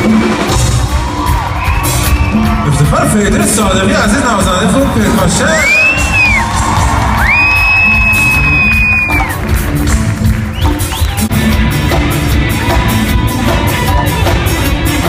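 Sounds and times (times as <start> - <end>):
audience cheering: 0.0 - 11.4, 12.3 - 15.0
live band playing: 0.0 - 15.0
piercing whistle: 5.6 - 6.4, 7.3 - 9.3.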